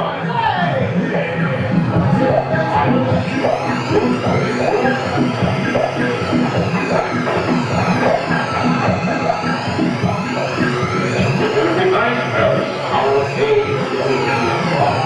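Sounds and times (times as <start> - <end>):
electronic music with pulsing beat: 0.0 - 15.0.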